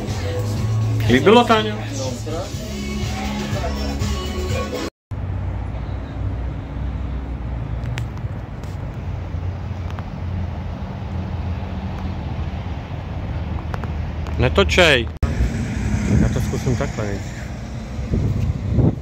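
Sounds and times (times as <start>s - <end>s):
music: 0.0s - 4.9s
road traffic rumble: 0.0s - 19.0s.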